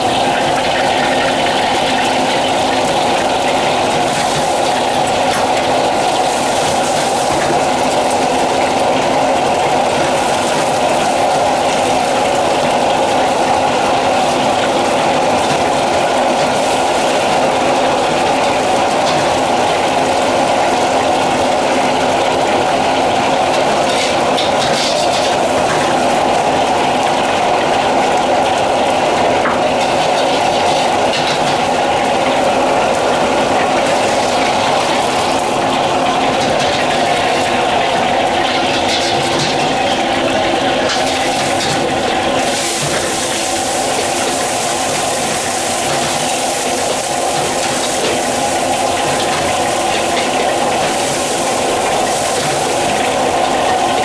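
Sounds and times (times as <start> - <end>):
eggs sizzling in oil: 0.0 - 54.0
gas burner roaring: 0.0 - 54.0.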